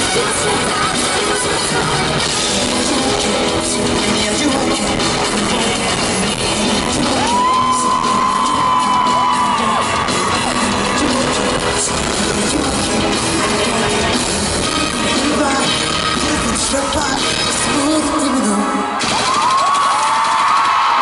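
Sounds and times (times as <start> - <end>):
loud live concert music: 0.0 - 21.0.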